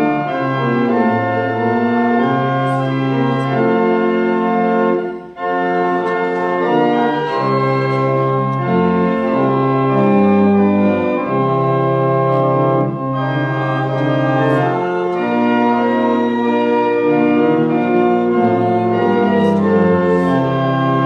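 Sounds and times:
organ playing hymn chords: 0:00.0 - 0:21.0.

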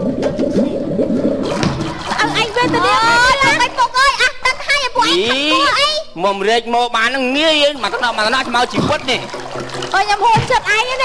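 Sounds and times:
water gurgling and sloshing: 0:00.0 - 0:05.8, 0:07.4 - 0:11.0.

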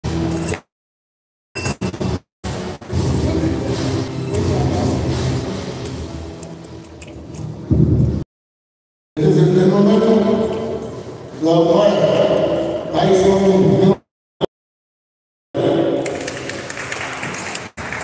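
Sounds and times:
general hall noise: 0:02.0 - 0:08.2, 0:09.2 - 0:14.0, 0:15.6 - 0:18.0.

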